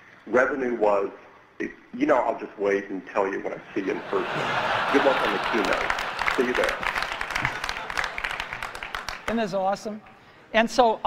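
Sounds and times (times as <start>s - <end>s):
audience applauding: 4.2s - 9.6s.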